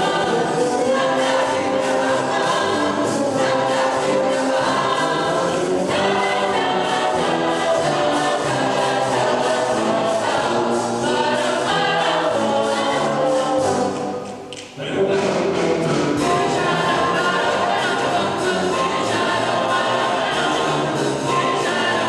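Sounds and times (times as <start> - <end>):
boys' choir singing: 0.0 - 22.0
brass band playing: 0.0 - 22.0.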